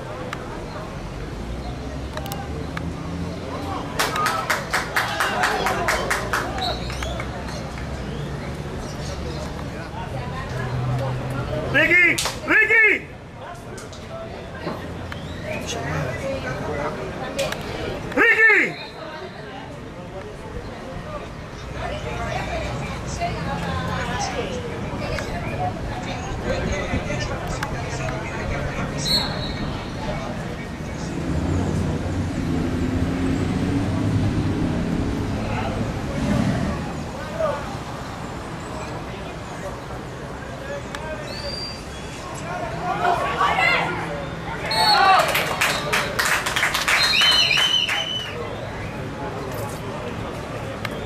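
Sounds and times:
voices: 0.0s - 51.0s
person shouting calls: 11.8s - 13.1s, 18.2s - 18.8s.

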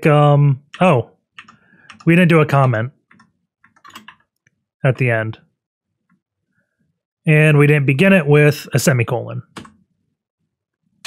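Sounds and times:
man talking: 0.0s - 1.1s, 2.0s - 3.0s, 4.8s - 5.5s, 7.2s - 9.6s.

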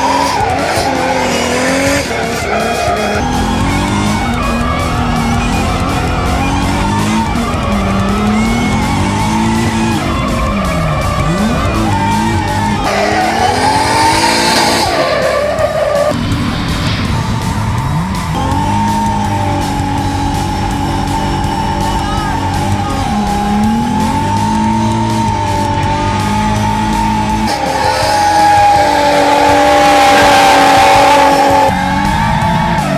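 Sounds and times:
background music: 0.0s - 32.9s
car engine at high revs: 0.0s - 32.9s.

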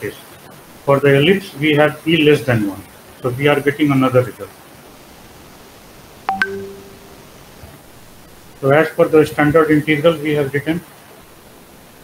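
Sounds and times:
two-tone electronic beep: 6.3s - 7.2s.

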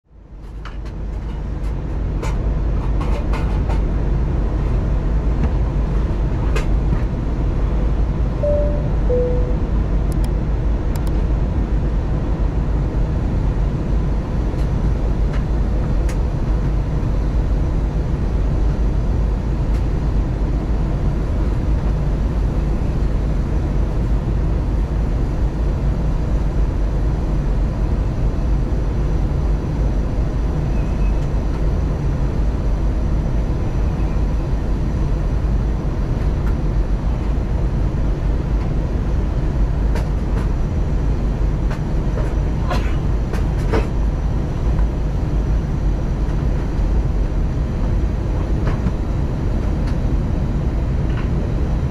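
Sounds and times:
airliner cabin engine hum: 0.2s - 51.9s
faint steady whine: 8.4s - 10.2s.

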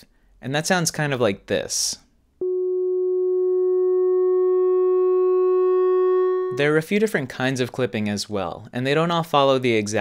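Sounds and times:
synthesizer holding steady note: 2.4s - 6.6s.

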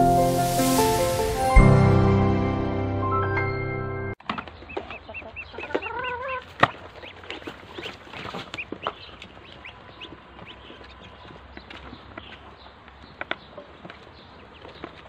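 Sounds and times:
ducklings peeping: 4.3s - 15.0s.

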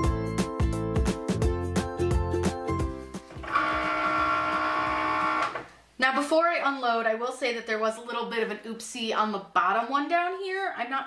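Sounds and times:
background music with a beat: 0.0s - 5.0s
cutting machine motors whining: 3.3s - 5.7s.

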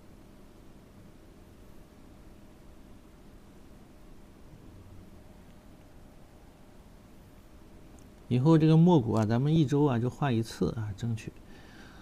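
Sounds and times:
faint hiss and low hum: 0.0s - 12.0s.

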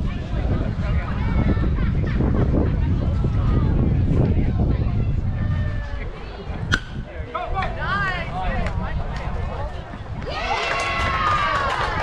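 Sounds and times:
baseball bat hitting ball: 6.7s - 7.1s
spectators shouting and cheering: 10.1s - 12.0s.

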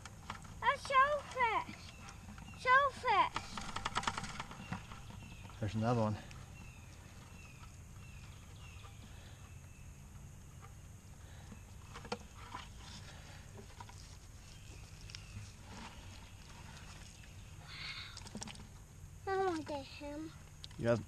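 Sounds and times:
steady low hum: 0.0s - 21.0s.

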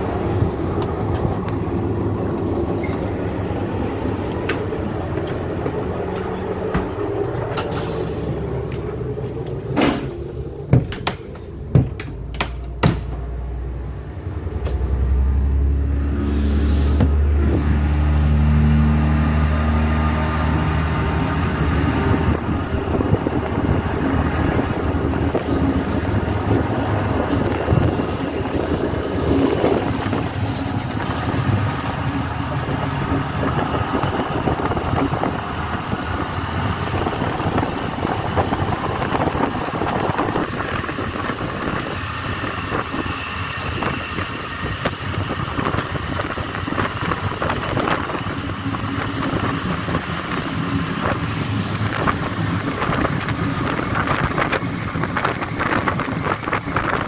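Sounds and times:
diesel railcar engine: 0.0s - 57.0s
train wheel and wind noise: 0.0s - 57.0s.

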